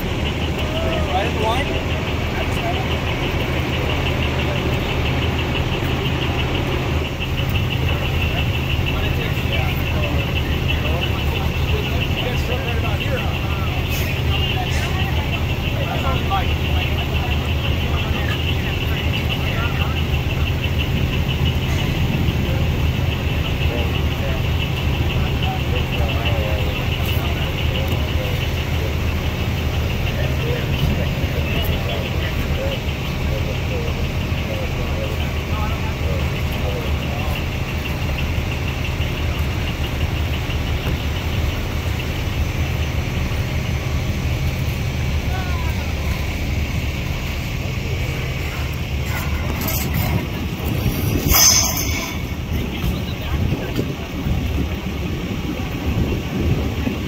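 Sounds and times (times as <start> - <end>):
indistinct voices talking: 0.0 - 57.0
vehicle engines idling with whine: 0.0 - 57.0.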